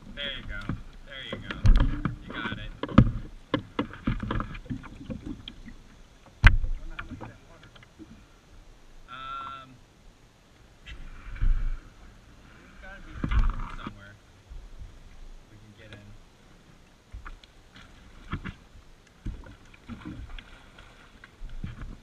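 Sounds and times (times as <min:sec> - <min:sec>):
water splashing and sloshing: 0:00.0 - 0:09.1, 0:10.5 - 0:22.0.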